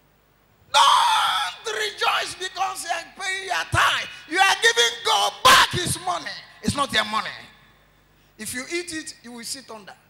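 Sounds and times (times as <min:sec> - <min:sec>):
man shouting through pa: 0:00.7 - 0:07.1
man preaching: 0:00.8 - 0:07.7, 0:08.4 - 0:10.0.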